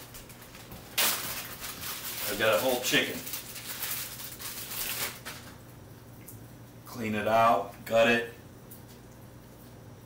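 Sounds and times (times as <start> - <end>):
crackly rustling of raw chicken wrapping: 0.0 - 5.8.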